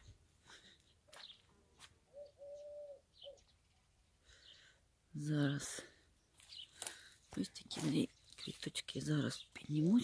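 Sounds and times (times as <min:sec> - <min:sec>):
dove cooing: 0:02.1 - 0:03.5.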